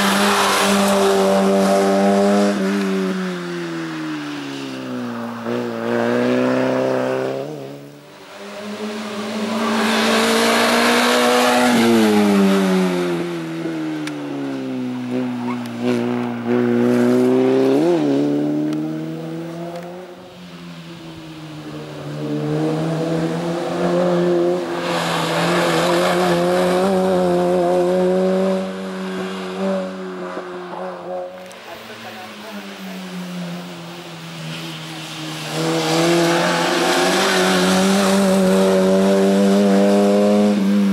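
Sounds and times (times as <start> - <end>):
race car engine revving: 5.4 - 20.2, 21.6 - 40.9.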